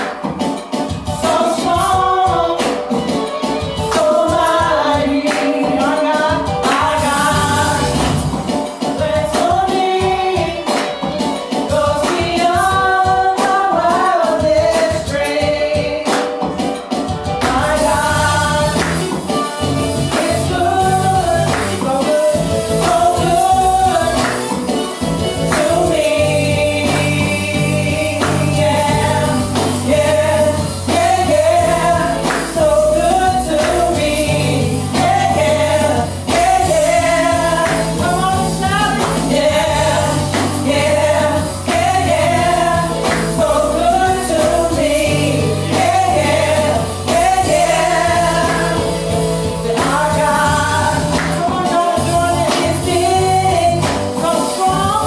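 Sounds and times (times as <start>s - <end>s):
percussion: 0.0s - 55.0s
women singing gospel: 0.0s - 55.0s
bass notes: 6.9s - 8.4s, 17.4s - 21.8s, 25.0s - 51.4s, 52.0s - 54.1s.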